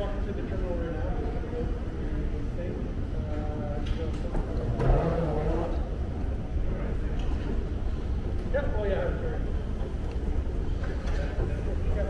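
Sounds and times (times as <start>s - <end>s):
voices nearby: 0.0s - 12.0s
steady low rumble: 5.7s - 12.0s.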